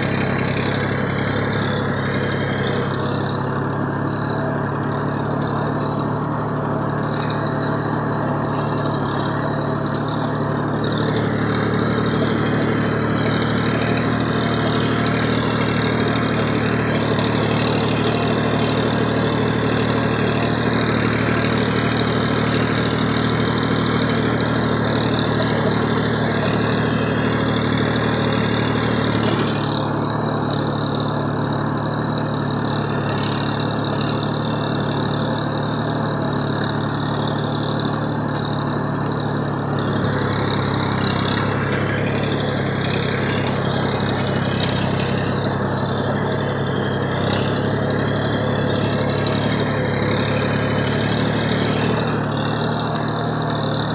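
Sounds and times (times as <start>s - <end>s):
tractor diesel engine running: 0.0s - 53.9s.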